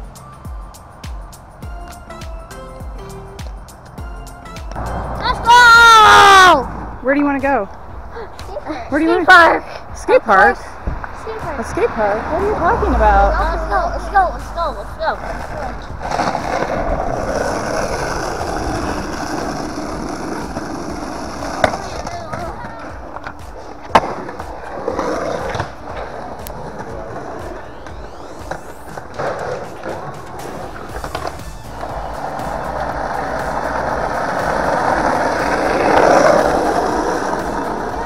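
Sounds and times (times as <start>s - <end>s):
wheels rolling over pavement: 4.7s - 38.0s.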